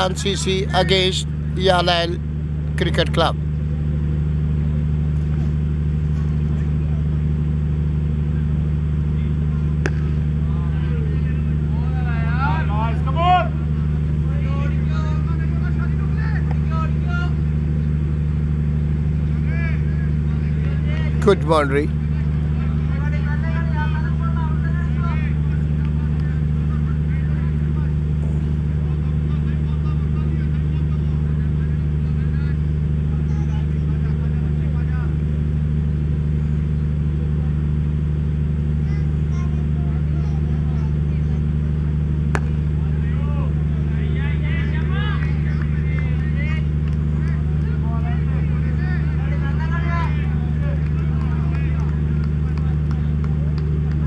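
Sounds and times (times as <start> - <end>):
distant men calling out: 0.0 - 37.7, 38.5 - 54.0
low mechanical hum: 0.0 - 54.0.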